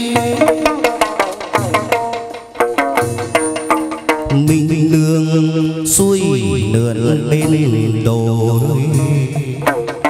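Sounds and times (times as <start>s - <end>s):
ritual singing: 0.0s - 1.7s, 4.2s - 10.0s
instrumental accompaniment: 0.0s - 10.0s.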